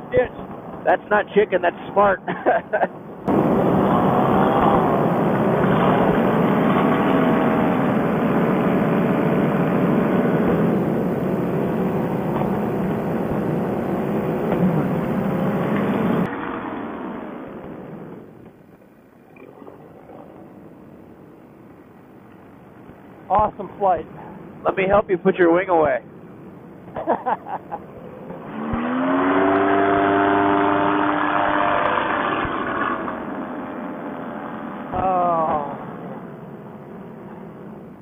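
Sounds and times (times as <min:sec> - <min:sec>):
paramotor engine and propeller: 0:02.2 - 0:38.0.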